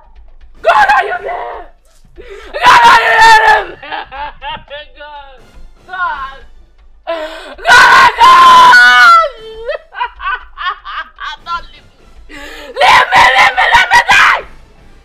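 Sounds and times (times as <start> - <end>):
woman screaming: 0.6 - 1.7, 2.4 - 3.8, 7.1 - 10.4, 12.4 - 14.5
woman wailing in grief: 2.4 - 3.9, 7.1 - 11.0, 12.3 - 14.5
woman sobbing: 9.0 - 11.5, 12.3 - 13.6.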